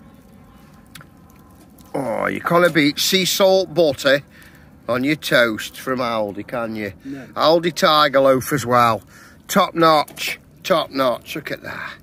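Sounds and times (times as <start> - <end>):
wood fire crackling: 0.0 - 12.0
fire pop: 8.5 - 11.5.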